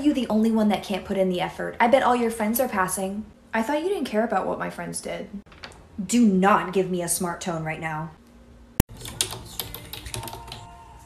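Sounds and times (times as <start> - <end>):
typing on computer keyboard: 8.9 - 10.7.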